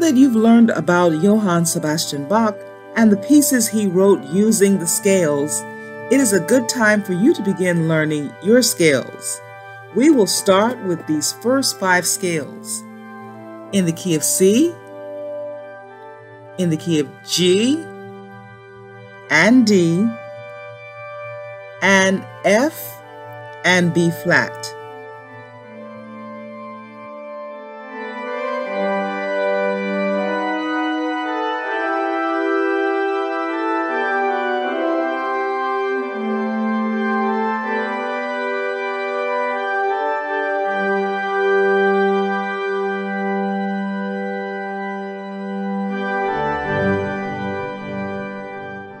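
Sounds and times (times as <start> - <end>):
organ music: 0.0 - 49.0.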